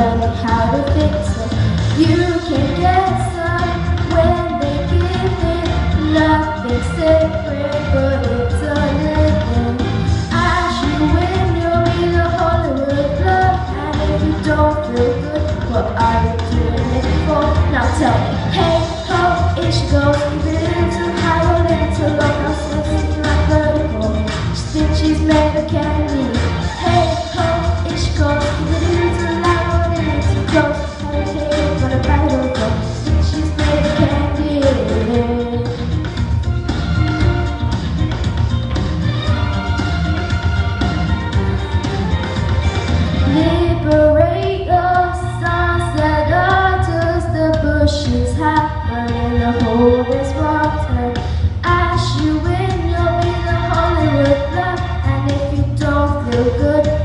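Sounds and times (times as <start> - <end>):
instrumental accompaniment: 0.0 - 57.0
boy singing into a microphone: 10.4 - 35.8, 43.3 - 57.0.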